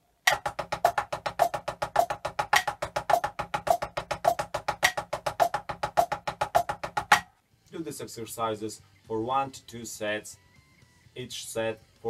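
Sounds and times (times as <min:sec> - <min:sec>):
drumsticks on muffled practice pad: 0:00.3 - 0:07.3.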